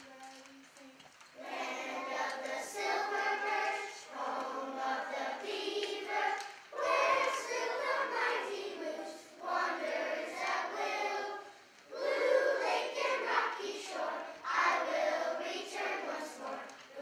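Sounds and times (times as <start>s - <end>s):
children's choir singing: 1.4s - 17.0s.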